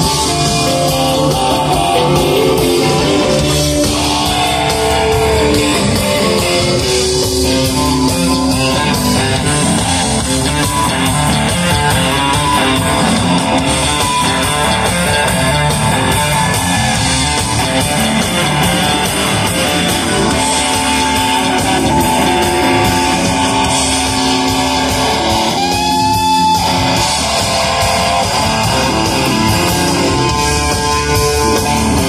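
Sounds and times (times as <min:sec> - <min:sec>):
live electric blues band: 0:00.0 - 0:32.0.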